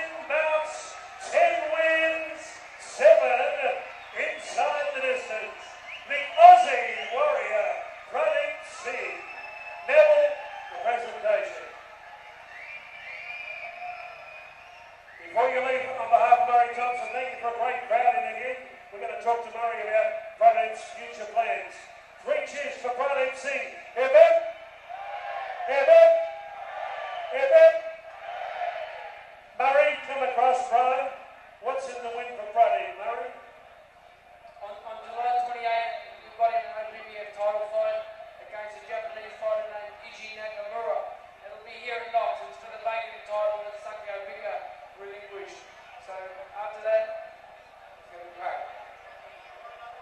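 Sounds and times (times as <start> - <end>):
muffled man speaking into microphone: 0.0 - 11.8, 15.2 - 24.6, 25.7 - 26.3, 27.3 - 28.0, 29.6 - 33.6, 34.6 - 47.3, 48.0 - 49.0.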